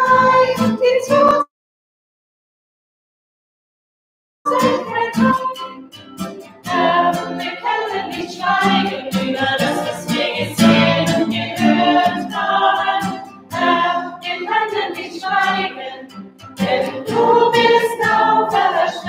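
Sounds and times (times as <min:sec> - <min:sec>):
group singing a hymn: 0:00.0 - 0:01.4, 0:04.5 - 0:05.6, 0:06.6 - 0:19.0
acoustic guitar: 0:00.0 - 0:01.5, 0:04.5 - 0:19.0.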